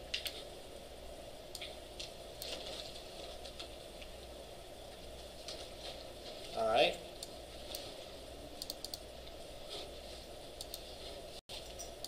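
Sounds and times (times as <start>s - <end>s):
steady low hum: 0.0s - 12.0s
faint clicks: 8.6s - 9.0s, 10.6s - 10.9s.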